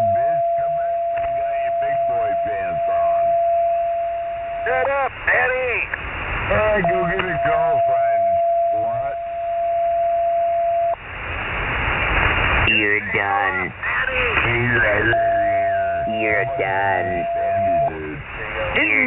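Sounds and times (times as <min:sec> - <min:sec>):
radio band hiss: 0:00.0 - 0:03.6, 0:04.6 - 0:09.3, 0:11.4 - 0:19.0
voices talking over radio: 0:00.0 - 0:10.1, 0:12.6 - 0:19.0
whistle-like heterodyne tone: 0:15.0 - 0:18.0.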